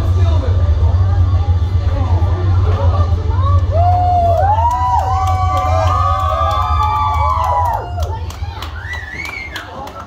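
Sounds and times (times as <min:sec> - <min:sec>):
low rumble: 0:00.0 - 0:09.5
children cheering and shouting: 0:03.6 - 0:10.0.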